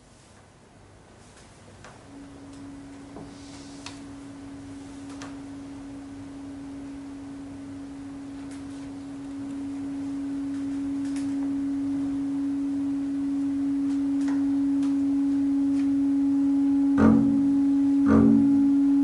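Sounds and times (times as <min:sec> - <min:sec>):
long held note: 0:02.0 - 0:19.0
clarinet bass and piano trio: 0:16.0 - 0:19.0.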